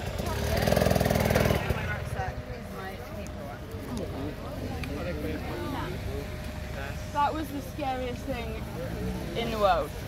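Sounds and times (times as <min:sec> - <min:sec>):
several people talking: 0:00.0 - 0:10.0.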